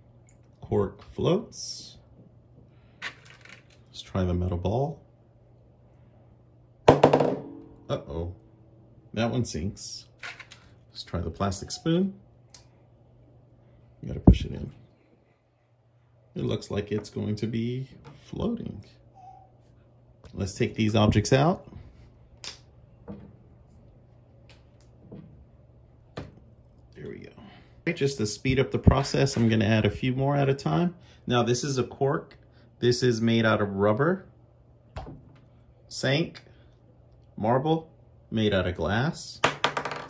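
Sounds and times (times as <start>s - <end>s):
faint steady hum: 0.0s - 40.0s
metal ball splashing into water: 6.9s - 7.8s.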